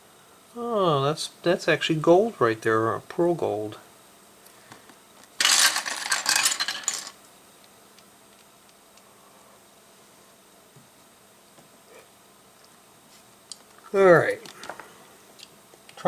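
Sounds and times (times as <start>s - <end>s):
plastic bricks clattering on table: 5.3s - 7.2s.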